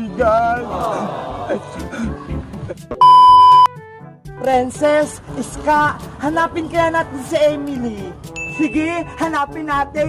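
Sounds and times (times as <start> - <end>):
faint background music: 0.0 - 10.0
high-pitched electronic beep: 3.0 - 3.7.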